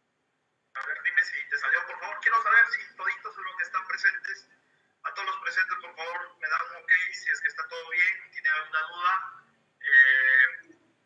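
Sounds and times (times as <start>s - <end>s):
person talking over phone line: 0.8s - 4.4s, 5.1s - 10.7s.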